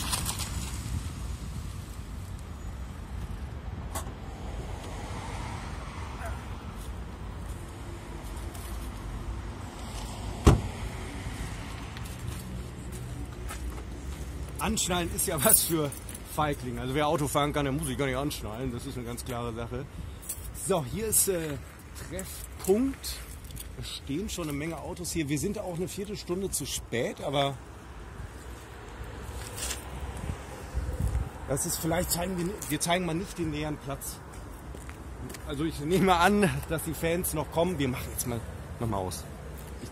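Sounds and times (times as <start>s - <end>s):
road traffic rumble: 0.0s - 39.9s
car door slamming: 10.4s - 10.8s
wind buffeting microphone: 30.0s - 31.8s.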